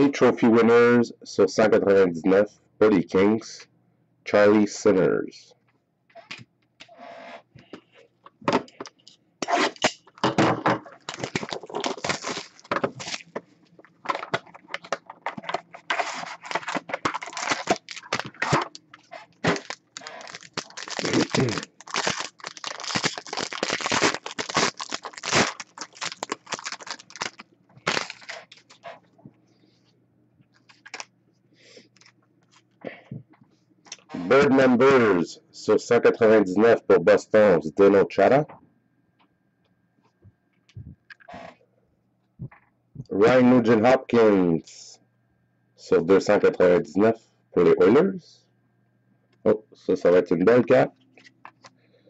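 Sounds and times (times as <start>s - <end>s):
foil and plastic wrap tearing: 11.0s - 13.3s, 14.7s - 28.8s.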